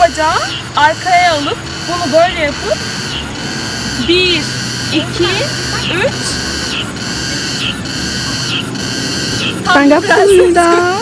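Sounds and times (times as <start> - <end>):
cicadas buzzing: 0.0 - 11.0.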